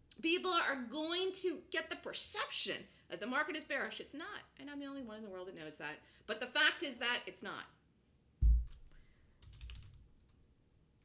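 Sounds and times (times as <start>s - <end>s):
dull thump: 8.4s - 8.8s
computer keyboard typing: 9.4s - 10.0s.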